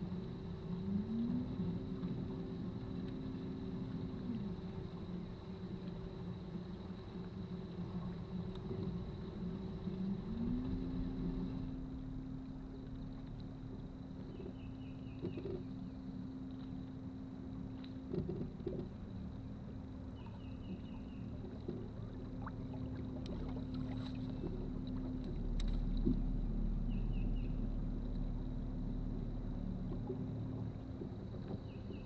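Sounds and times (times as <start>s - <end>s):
faint ticks: 0.0s - 32.0s
wind and water rumble: 0.0s - 32.0s.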